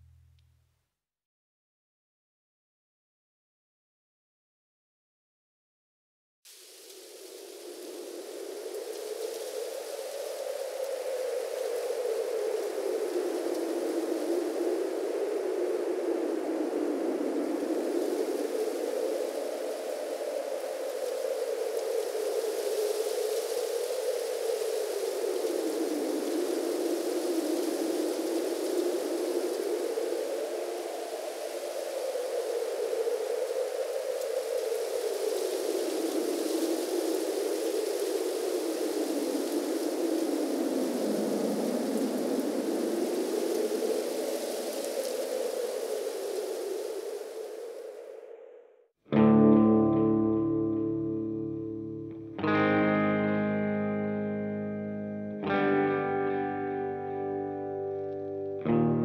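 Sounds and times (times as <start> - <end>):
sweeping wind-like hiss: 6.5 - 59.0.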